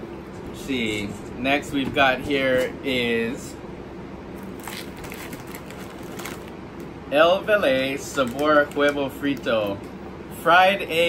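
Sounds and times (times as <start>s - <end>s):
plastic chip bag crinkling: 4.4s - 6.6s, 8.0s - 9.6s.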